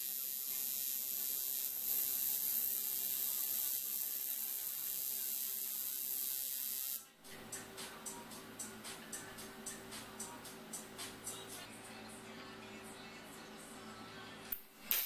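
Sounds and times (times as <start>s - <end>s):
welding arc hissing: 0.0s - 7.1s, 14.5s - 15.0s.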